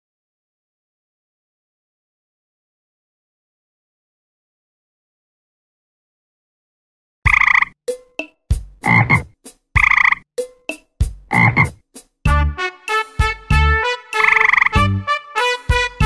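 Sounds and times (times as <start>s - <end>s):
frog croaking: 7.3s - 7.8s, 8.8s - 10.2s, 11.3s - 11.7s, 14.2s - 14.8s
bouncy music of short notes: 7.9s - 16.0s.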